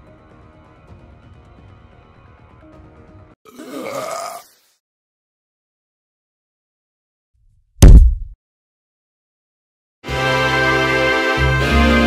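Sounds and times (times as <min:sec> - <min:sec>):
long cartoon burp: 0:03.5 - 0:04.5.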